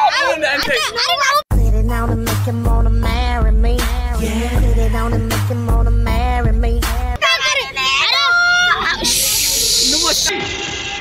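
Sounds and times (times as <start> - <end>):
loud hiss: 9.0 - 10.3.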